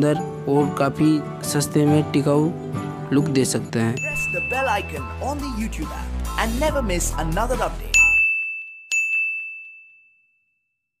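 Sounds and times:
bright bell ding: 0:04.0 - 0:05.5, 0:07.9 - 0:10.7.

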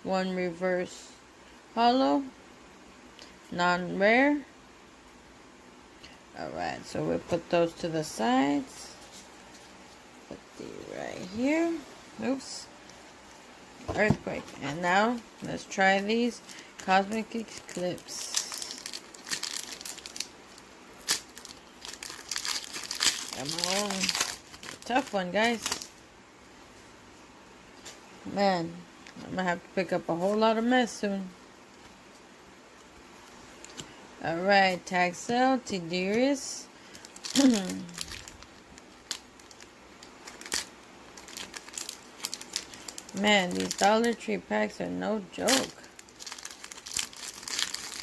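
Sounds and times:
foil wrapper crinkling: 0:14.0 - 0:26.0, 0:36.8 - 0:44.3, 0:45.3 - 0:48.0
sharp crackle of foil: 0:14.8 - 0:26.0, 0:36.8 - 0:44.3, 0:45.3 - 0:48.0.

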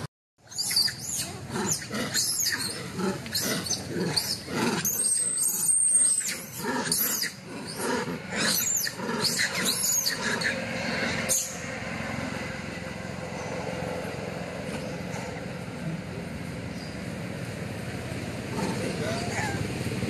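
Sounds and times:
macaques squealing and chirping: 0:00.5 - 0:11.6, 0:18.6 - 0:19.7
long high monkey call: 0:00.5 - 0:11.7, 0:18.5 - 0:19.7.

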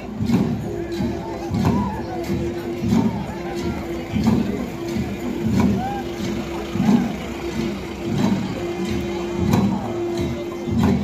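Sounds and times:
crowd voices: 0:00.0 - 0:11.0
long drums beating heavy pulse: 0:00.0 - 0:11.0.

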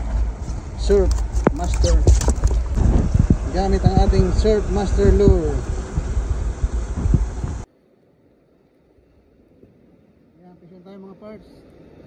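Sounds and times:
wind rumbling on microphone: 0:00.0 - 0:07.7.

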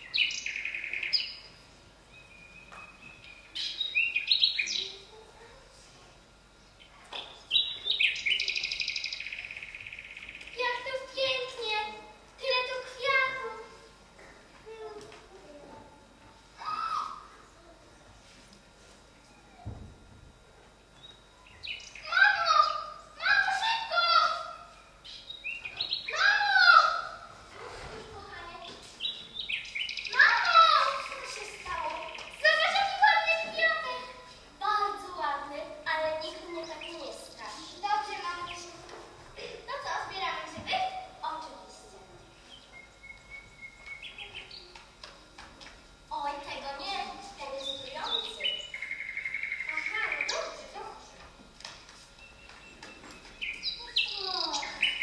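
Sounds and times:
child squealing: 0:16.6 - 0:17.3, 0:26.1 - 0:27.1.

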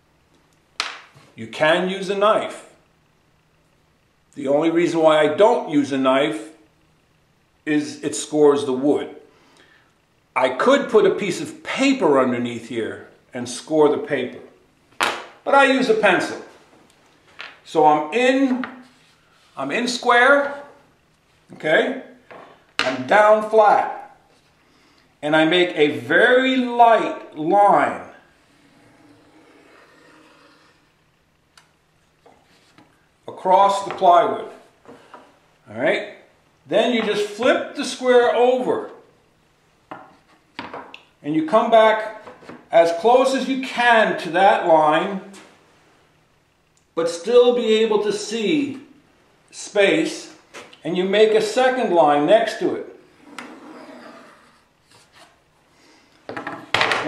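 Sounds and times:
pencil scratching on plywood: 0:28.6 - 0:30.7.

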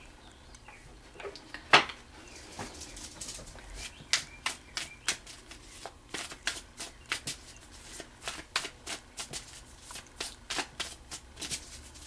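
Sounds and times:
cards being shuffled: 0:03.0 - 0:12.0.

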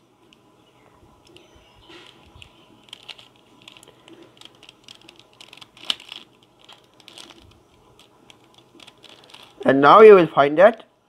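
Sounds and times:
puzzle cube plastic clicks: 0:01.2 - 0:09.6.

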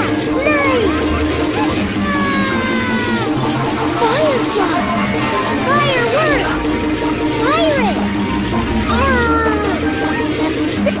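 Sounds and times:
music with steady tones: 0:00.0 - 0:11.0.

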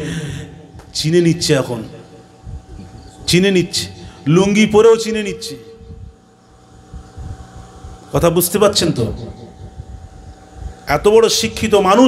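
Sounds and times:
low background rumble: 0:00.0 - 0:11.9
faint steady hum: 0:00.0 - 0:12.0.

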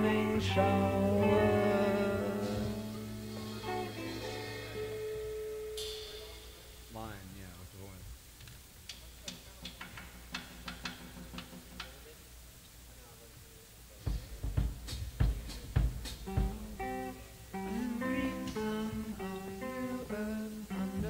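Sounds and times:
rock band final chord: 0:00.0 - 0:07.0, 0:16.0 - 0:21.0.

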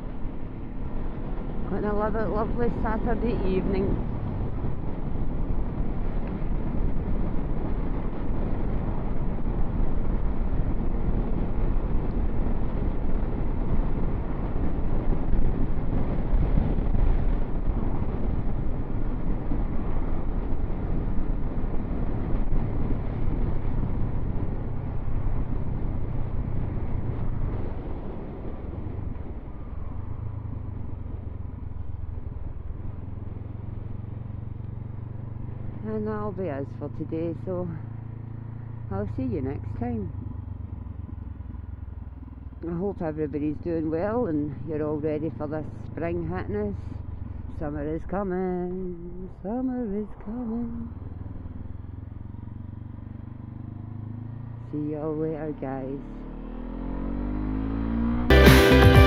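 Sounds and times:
heavy wind noise: 0:00.0 - 0:34.0
motorcycle engine running: 0:00.0 - 0:49.5, 0:50.3 - 0:59.0.

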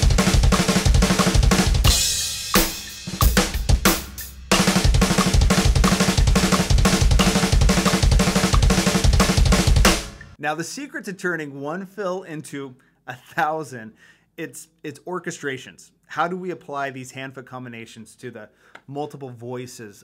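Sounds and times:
bass drum strokes: 0:00.0 - 0:10.4
drum kit fill: 0:00.0 - 0:10.4
cymbal crash: 0:01.9 - 0:04.9.

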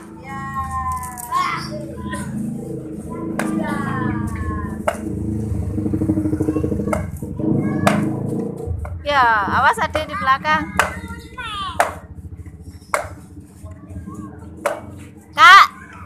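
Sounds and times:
children playing: 0:00.0 - 0:08.8, 0:09.7 - 0:16.0.

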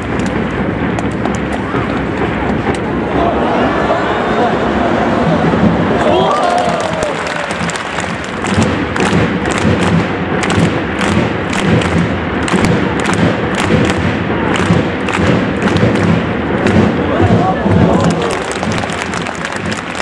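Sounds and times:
crowd din: 0:00.0 - 0:20.0
crowd rhythmic thumps and claps: 0:00.0 - 0:20.0.

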